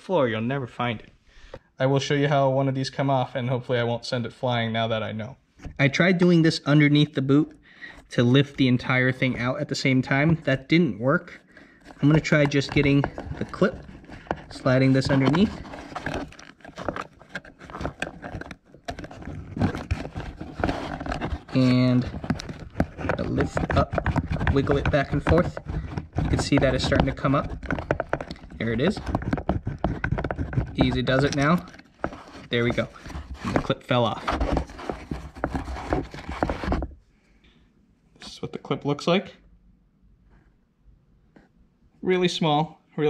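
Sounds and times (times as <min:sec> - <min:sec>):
fingers rubbing fabric: 0:11.2 - 0:36.9.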